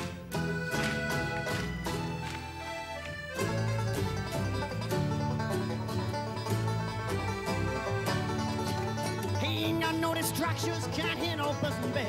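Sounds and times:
banjo picking: 0.0s - 12.0s
low bass notes: 0.0s - 12.0s
mandolin picking: 0.0s - 12.0s
person singing: 9.2s - 12.0s.

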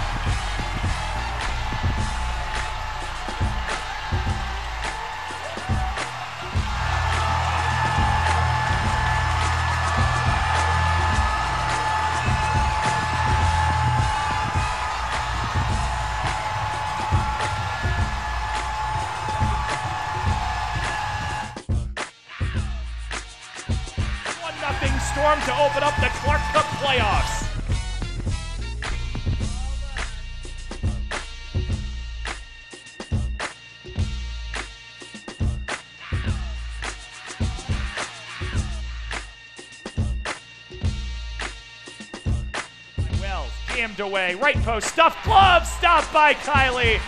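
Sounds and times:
crowd roaring: 0.0s - 21.6s, 24.4s - 27.5s, 44.8s - 47.0s
music with a steady beat: 0.0s - 47.0s.

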